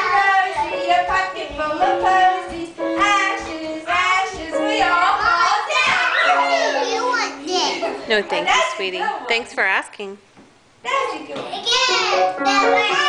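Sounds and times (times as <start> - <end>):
young children singing: 0.0 - 8.1, 11.9 - 13.0
piano playing held notes: 0.0 - 8.3, 11.9 - 13.0.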